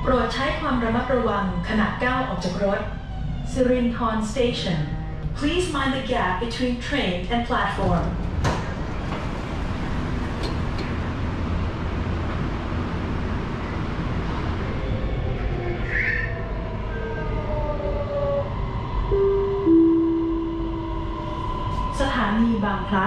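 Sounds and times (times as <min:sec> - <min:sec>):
train wheels rumbling on track: 0:07.2 - 0:19.7
two-note chime: 0:19.2 - 0:20.9.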